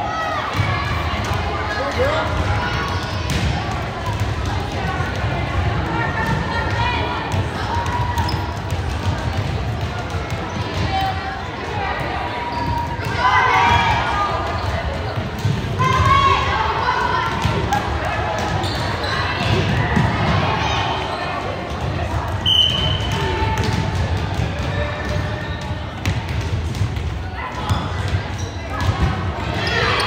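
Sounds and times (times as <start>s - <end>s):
voices echoing in a hall: 0.0s - 30.0s.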